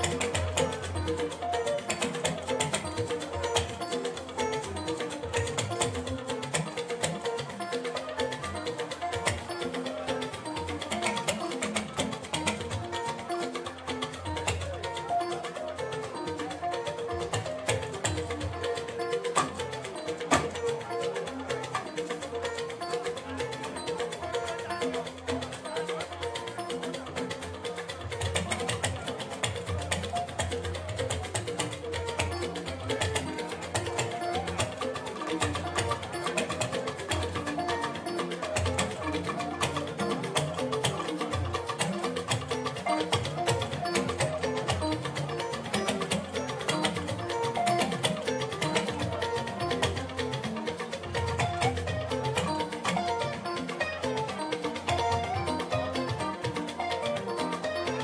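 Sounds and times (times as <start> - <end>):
busy drumming: 0.0 - 58.0
pitched instruments: 0.0 - 58.0.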